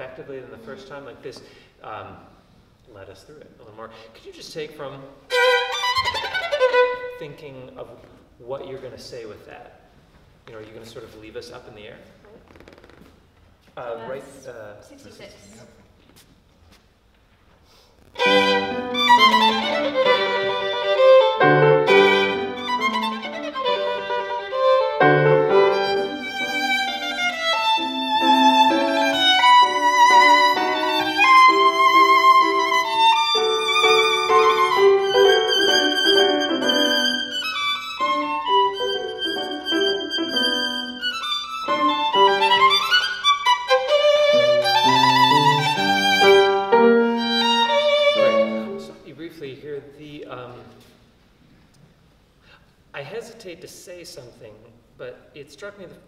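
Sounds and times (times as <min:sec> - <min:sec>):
violin playing with vibrato: 0:05.3 - 0:07.2, 0:18.1 - 0:49.0
piano accompaniment: 0:18.2 - 0:49.0.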